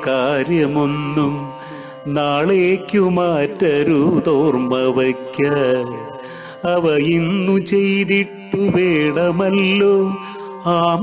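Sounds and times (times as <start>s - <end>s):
person singing wavering melody: 0.0s - 11.0s.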